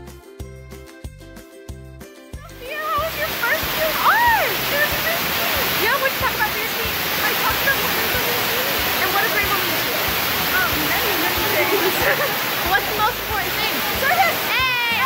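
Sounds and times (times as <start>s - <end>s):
faint voices: 2.5s - 15.0s
loud rushing hiss: 2.8s - 15.0s.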